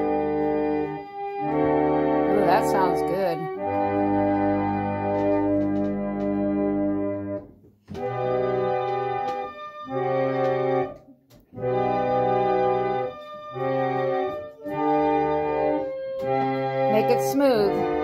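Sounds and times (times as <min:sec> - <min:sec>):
reed pump organ playing chords: 0:00.0 - 0:18.0.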